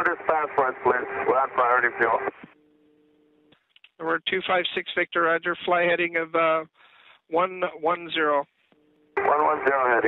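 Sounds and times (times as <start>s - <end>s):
man talking over radio: 0.0s - 2.4s, 9.2s - 10.0s.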